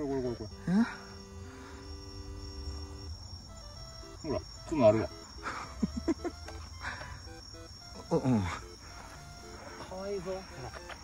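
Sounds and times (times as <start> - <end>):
background music held notes: 0.0 - 11.0
crickets trilling: 0.0 - 11.0.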